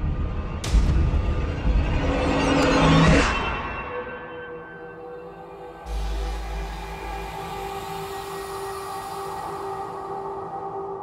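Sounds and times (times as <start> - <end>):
rumbling drone with held tones: 5.2 - 11.0.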